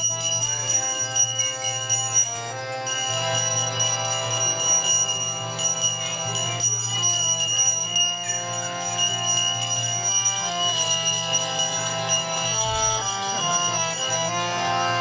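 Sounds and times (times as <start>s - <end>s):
hand cymbals striking: 0.0s - 15.0s
harmonium chords: 0.0s - 15.0s
steady drone: 0.0s - 15.0s.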